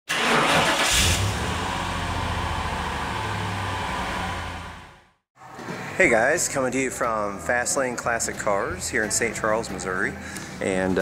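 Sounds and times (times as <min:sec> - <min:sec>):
car engine revving: 0:00.1 - 0:05.2.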